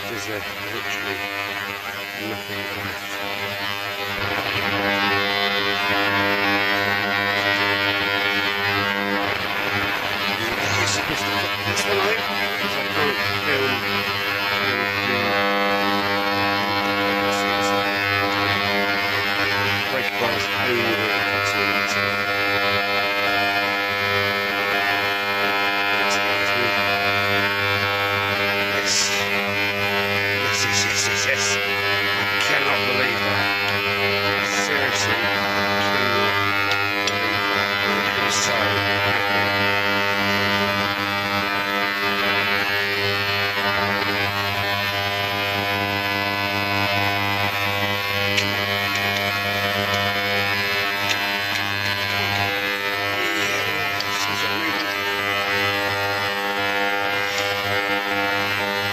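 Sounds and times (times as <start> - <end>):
electrical hum: 0.0 - 58.9.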